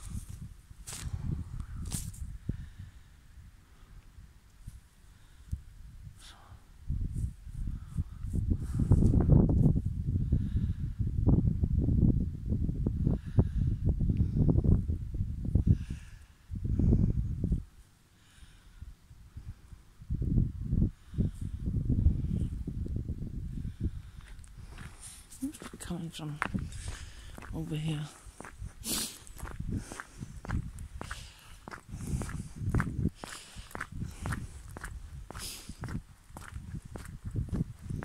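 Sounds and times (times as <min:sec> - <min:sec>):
rumbling and crackling on microphone: 0:00.0 - 0:17.9, 0:18.7 - 0:38.0.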